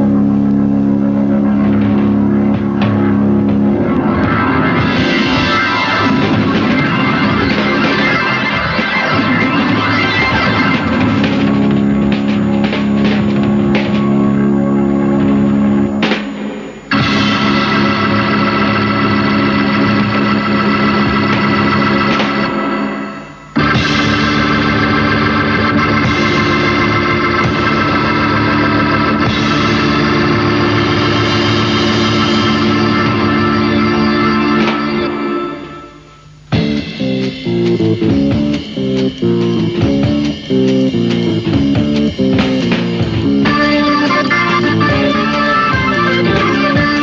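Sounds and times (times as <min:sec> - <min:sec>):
live band holding a chord: 0:00.0 - 0:47.0
light drumming: 0:36.5 - 0:47.0.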